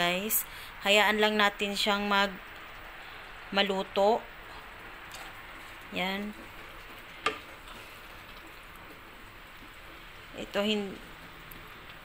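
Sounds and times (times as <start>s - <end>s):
food simmering hiss: 0.0s - 12.0s.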